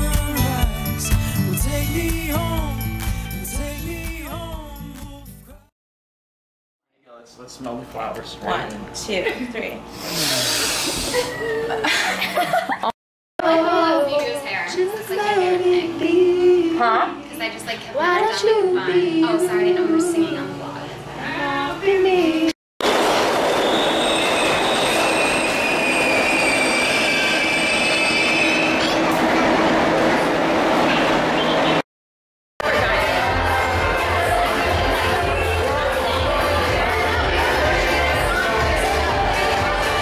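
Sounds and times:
people sniffing hard: 9.9 - 11.3
person laughing: 10.4 - 12.9
subway train rumble and rattle: 22.8 - 31.8
metallic wheel squeal: 23.6 - 29.1.

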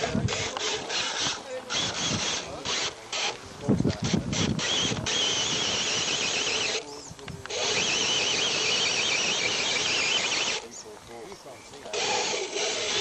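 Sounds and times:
electric motor and gears whining: 0.0 - 10.7, 11.8 - 13.0.

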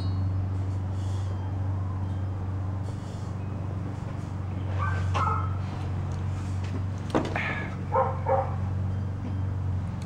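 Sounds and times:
steady low hum: 0.0 - 10.0
dog barking: 4.8 - 5.6, 7.9 - 8.6.

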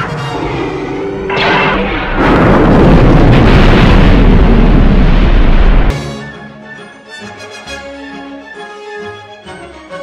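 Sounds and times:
deep explosion roar: 0.2 - 5.9.

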